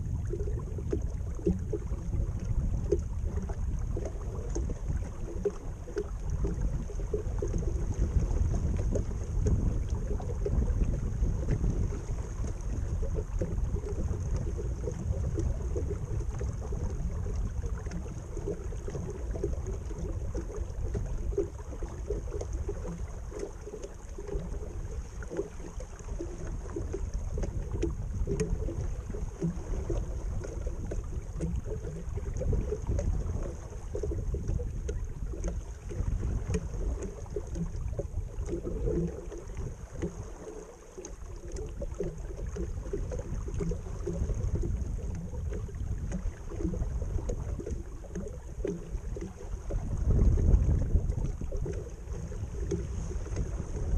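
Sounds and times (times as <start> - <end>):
wind buffeting microphone: 0.0 - 23.1, 23.8 - 40.3, 41.6 - 53.9
water splashing along a hull: 0.0 - 53.9.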